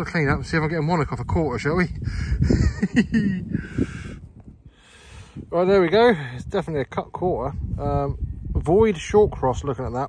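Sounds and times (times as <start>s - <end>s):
breathy rush of air: 2.0s - 2.7s, 3.4s - 6.4s
man laughing under his breath: 2.0s - 4.3s.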